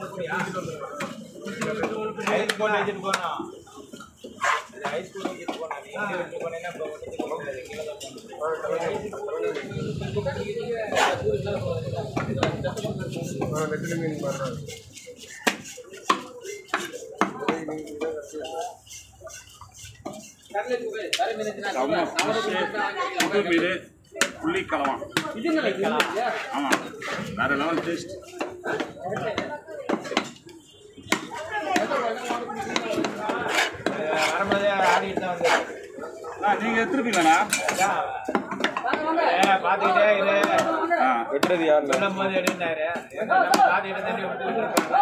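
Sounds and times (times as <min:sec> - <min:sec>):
men talking: 0:00.0 - 0:29.8, 0:30.5 - 0:45.0.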